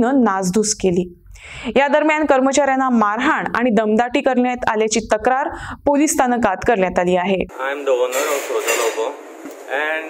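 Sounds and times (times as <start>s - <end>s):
woman talking: 0.0s - 7.5s
man talking: 7.5s - 10.0s.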